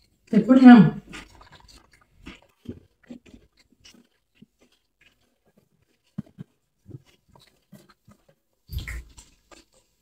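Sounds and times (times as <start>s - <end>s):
chewing: 1.0s - 10.0s.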